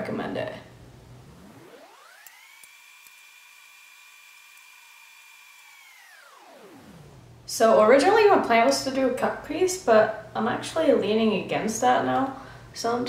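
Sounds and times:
sped-up hum whining: 0.7 - 7.5.

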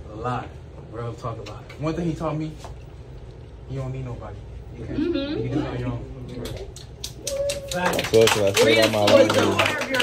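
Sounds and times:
people clapping and cheering: 6.3 - 10.0.

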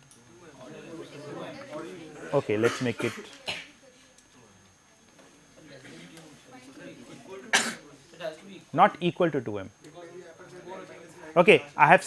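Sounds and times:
short cough: 2.6 - 3.7, 7.5 - 7.9.

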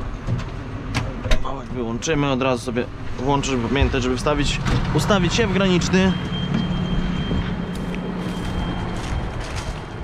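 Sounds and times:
high electronic warning tone: 5.1 - 9.8.

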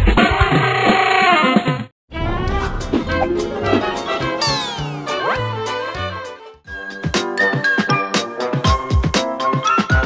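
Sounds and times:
comic jingle music: 2.1 - 8.2
cartoon pitch glide effect: 3.1 - 5.8.

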